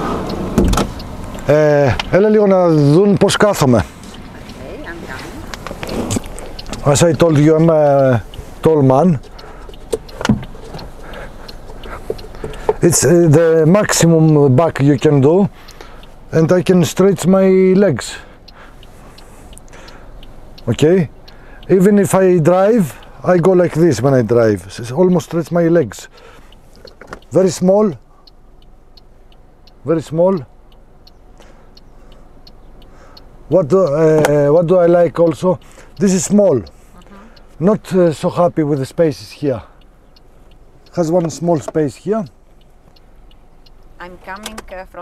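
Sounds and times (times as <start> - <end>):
turn signal ticking: 0.0 - 45.0
soft knocks and clicks in car: 0.4 - 1.0, 9.2 - 11.0.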